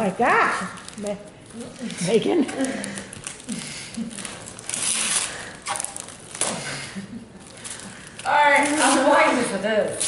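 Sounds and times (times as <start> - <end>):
wrapping paper tearing and crinkling: 0.4 - 10.0.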